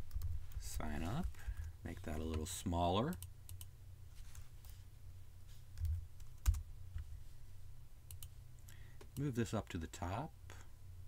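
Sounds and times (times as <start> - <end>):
faint low steady hum: 0.0 - 11.0
computer keyboard keystrokes: 5.8 - 6.6.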